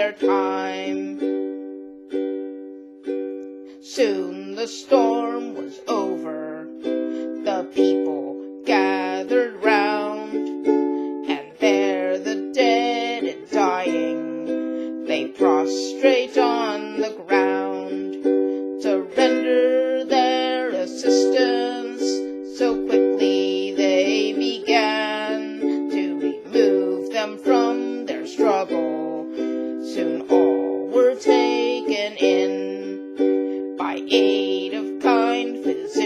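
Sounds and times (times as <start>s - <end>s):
woman singing a folk ballad: 0.0s - 1.5s, 3.7s - 36.0s
strummed ukulele: 0.0s - 36.0s.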